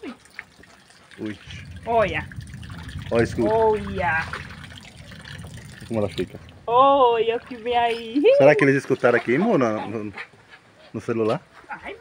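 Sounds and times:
distant thunder rumbling: 0:01.2 - 0:08.8.

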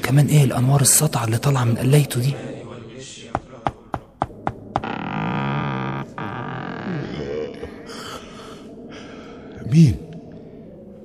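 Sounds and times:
knocking on wooden door: 0:03.3 - 0:04.9.

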